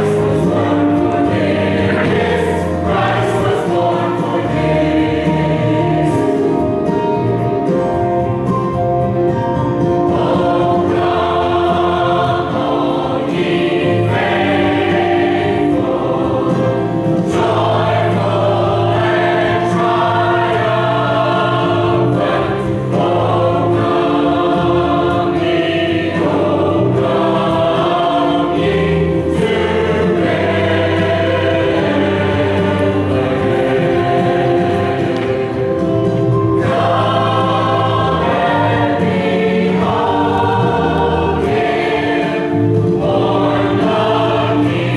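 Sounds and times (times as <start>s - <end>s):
mixed choir singing: 0.0s - 44.9s.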